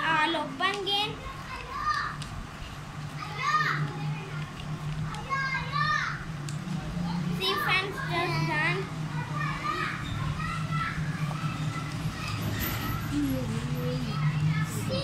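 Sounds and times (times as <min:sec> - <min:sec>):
children vocalising: 0:07.4 - 0:15.0.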